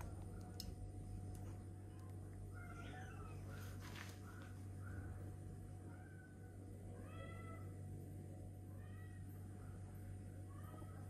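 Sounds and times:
steady low hum: 0:00.0 - 0:11.0
faint animal cries: 0:02.5 - 0:05.1, 0:05.8 - 0:07.8.

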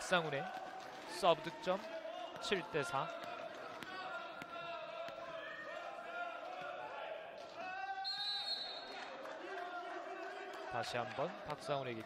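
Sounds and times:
voices calling and cheering: 0:00.0 - 0:12.0
volleyball bouncing on court floor: 0:01.7 - 0:05.9.

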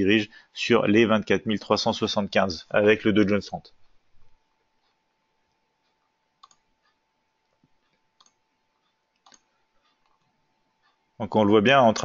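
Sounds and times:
faint steady electronic tone: 0:00.0 - 0:12.0
faint computer mouse clicks: 0:04.8 - 0:11.0.

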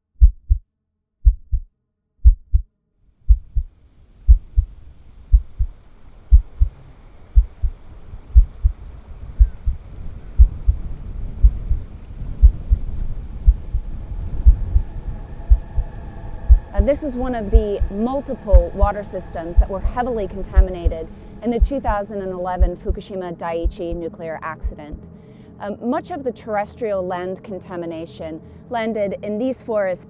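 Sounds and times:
heartbeat-like low thumps: 0:00.2 - 0:00.6, 0:01.2 - 0:02.7, 0:03.3 - 0:03.7, 0:04.3 - 0:14.9, 0:15.5 - 0:23.0, 0:23.6 - 0:25.1
steady noise: 0:03.2 - 0:25.2.

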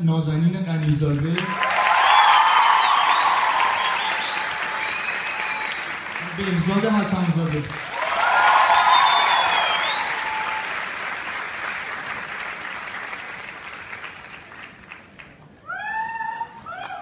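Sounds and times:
audience applauding: 0:01.1 - 0:15.5
crowd cheering: 0:01.3 - 0:17.0
high whistle: 0:02.0 - 0:05.9, 0:08.7 - 0:10.6.

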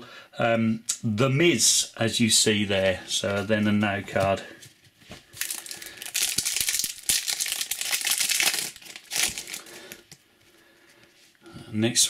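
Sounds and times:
foil wrapper crinkling: 0:05.3 - 0:10.2.

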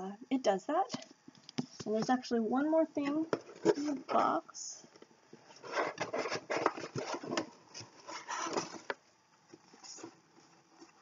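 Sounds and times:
rustling in a cardboard box: 0:05.4 - 0:11.0.

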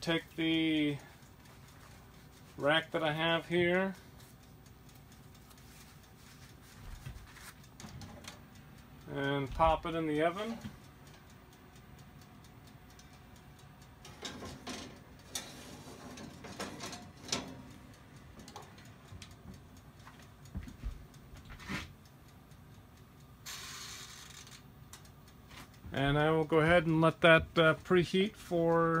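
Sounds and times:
mechanical timer ticking: 0:00.0 - 0:29.0
oven rack and door clatter: 0:06.8 - 0:08.5, 0:14.0 - 0:19.5
brief hiss: 0:23.4 - 0:24.2.

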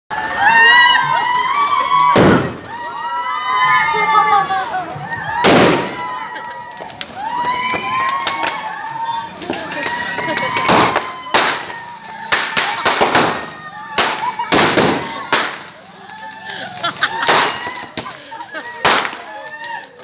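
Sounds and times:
firecrackers banging: 0:00.1 - 0:20.0
people shouting: 0:00.1 - 0:20.0.

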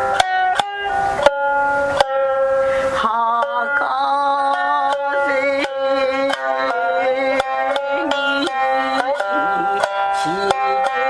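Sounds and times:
shamisen plucked notes: 0:00.0 - 0:11.0.

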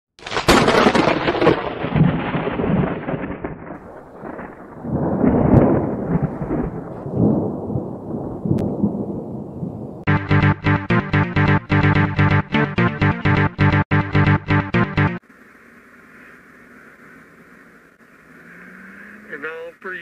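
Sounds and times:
thunder crack and rumbles: 0:00.4 - 0:10.1.

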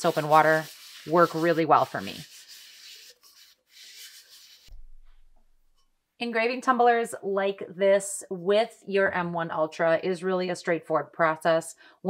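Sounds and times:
metal tumbler rubbed in hands: 0:00.0 - 0:04.8.

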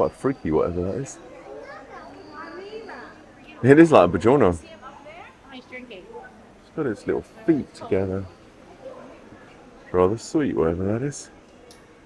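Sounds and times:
children's voices: 0:00.0 - 0:03.7
background chatter of visitors: 0:00.0 - 0:12.0
thin steady high tone: 0:00.0 - 0:12.0.

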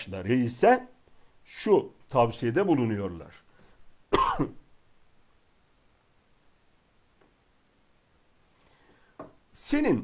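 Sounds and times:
man coughing: 0:04.1 - 0:04.6.

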